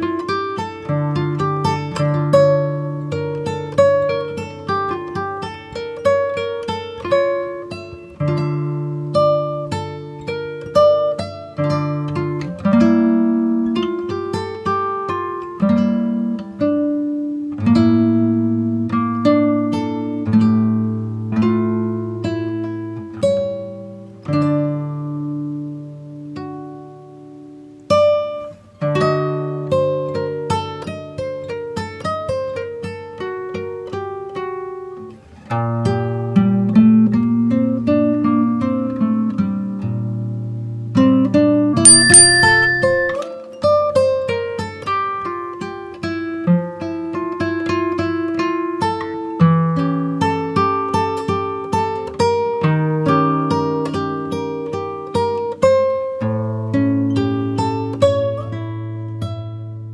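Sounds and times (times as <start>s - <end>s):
acoustic guitar instrumental: 0.0s - 59.9s.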